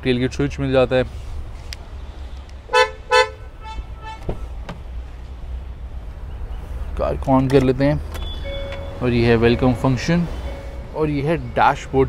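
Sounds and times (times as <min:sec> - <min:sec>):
car horn chirping: 0:02.7 - 0:04.6
car door clicks: 0:04.2 - 0:04.9
high beeps: 0:08.2 - 0:09.0.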